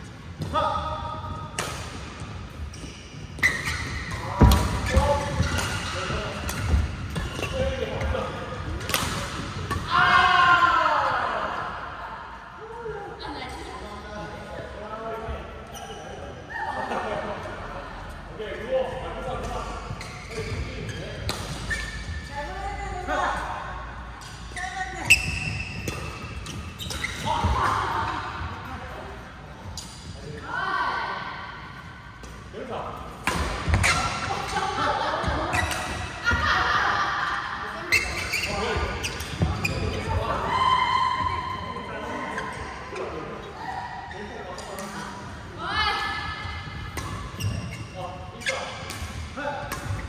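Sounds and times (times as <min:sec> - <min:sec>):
badminton rackets hitting shuttlecocks: 0:03.4 - 0:07.6, 0:08.7 - 0:09.9.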